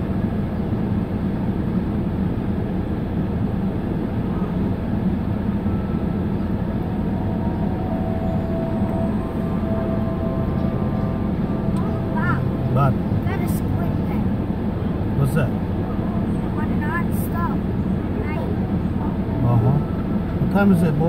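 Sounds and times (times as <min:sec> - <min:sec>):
car idling rumble: 0:00.0 - 0:21.0.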